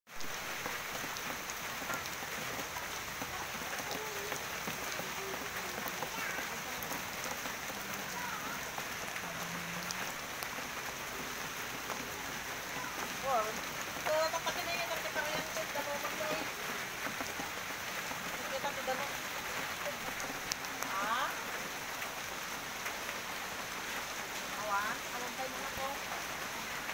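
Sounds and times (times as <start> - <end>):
heavy rain on roofs: 0.1 - 26.9.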